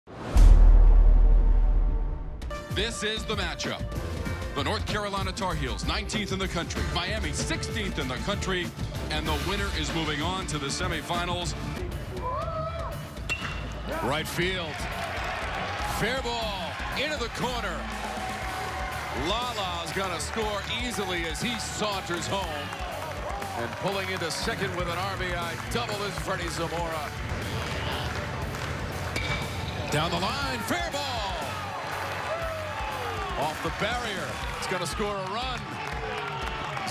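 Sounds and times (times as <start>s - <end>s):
stadium crowd noise: 2.6s - 36.9s
metal bat hitting ball: 13.3s - 13.7s.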